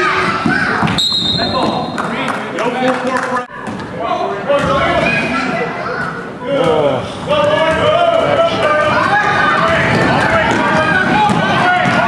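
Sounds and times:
children shouting: 0.0s - 1.0s, 8.6s - 12.0s.

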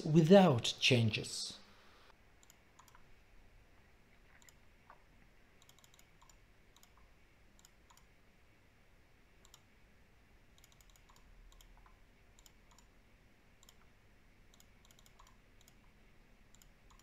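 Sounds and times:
computer mouse clicks: 2.4s - 3.1s, 4.3s - 5.0s, 5.6s - 8.2s, 9.4s - 9.7s, 10.5s - 13.0s, 13.6s - 17.0s.

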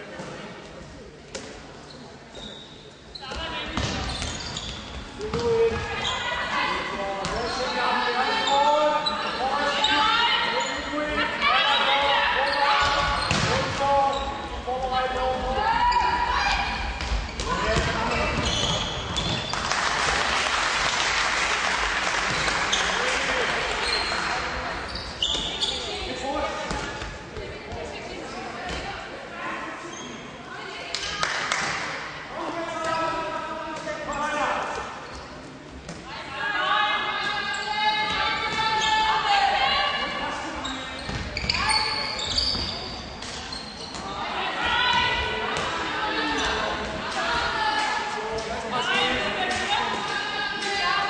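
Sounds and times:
shoes squeaking: 1.8s - 11.1s, 15.6s - 19.6s, 23.7s - 27.0s, 40.4s - 44.2s
applause: 19.5s - 23.2s.

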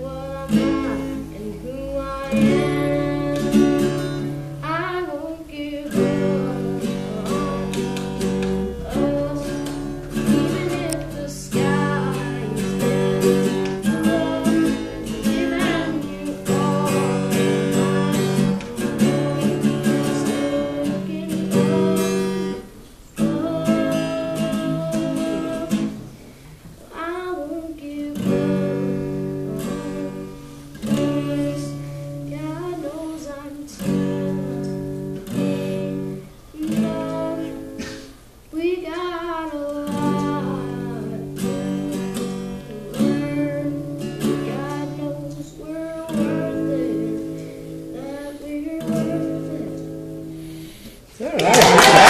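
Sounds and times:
boy singing: 0.0s - 26.1s, 26.8s - 50.3s
acoustic guitar strumming: 0.0s - 52.0s.

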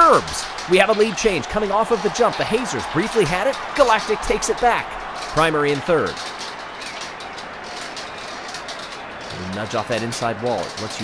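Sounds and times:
marbles rolling on plastic track: 0.0s - 11.0s.

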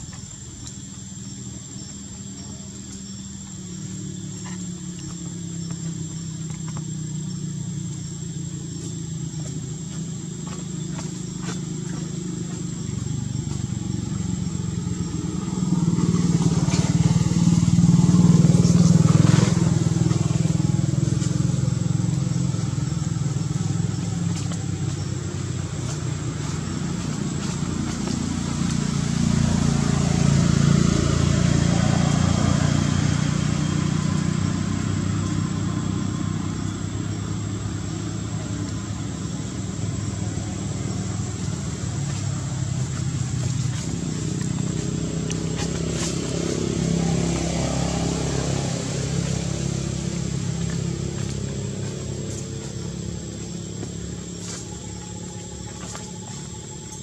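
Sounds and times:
low vehicle engine drone: 0.0s - 57.0s.

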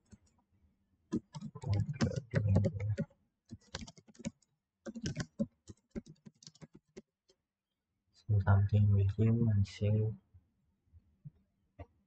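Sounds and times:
typing on computer keyboard: 1.1s - 7.1s.

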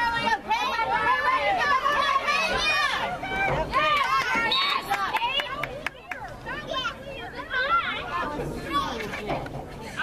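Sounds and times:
voices calling out and chattering: 0.0s - 10.0s.

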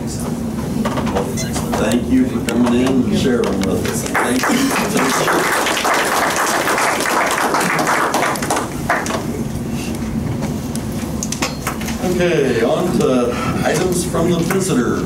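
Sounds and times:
audience applauding: 3.9s - 9.4s.

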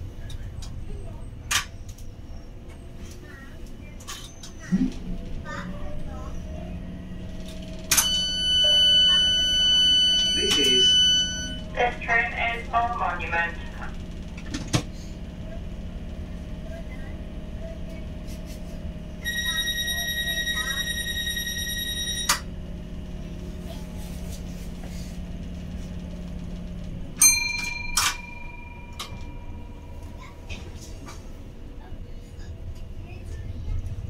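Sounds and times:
train equipment humming: 0.0s - 34.0s
ringing tone: 8.0s - 11.6s, 19.2s - 22.4s.

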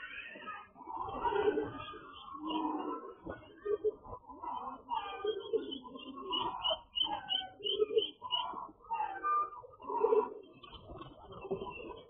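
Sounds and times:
pigeons cooing: 0.0s - 12.0s
chicks peeping: 0.4s - 9.2s.

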